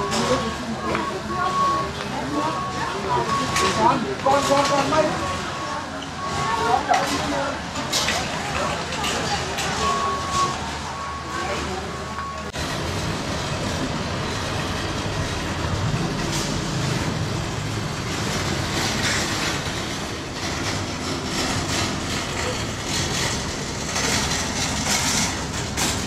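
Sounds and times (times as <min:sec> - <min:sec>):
murmur of voices: 0:00.0 - 0:12.6
quiet store ambience: 0:00.0 - 0:26.0
traffic noise: 0:00.0 - 0:26.0
shopping cart wheels rattling: 0:12.6 - 0:26.0.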